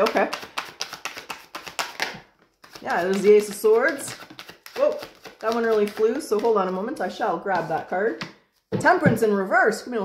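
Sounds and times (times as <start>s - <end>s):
cards being shuffled: 0.0s - 8.6s.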